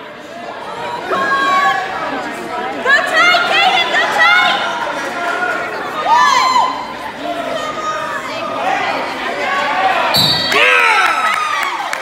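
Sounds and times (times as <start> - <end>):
whistle blast: 10.2 - 10.8.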